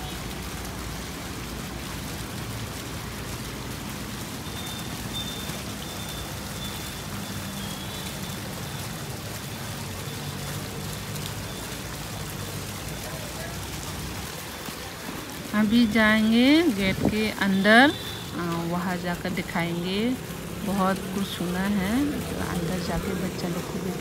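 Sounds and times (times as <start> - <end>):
fountain water splashing: 0.0 - 24.0.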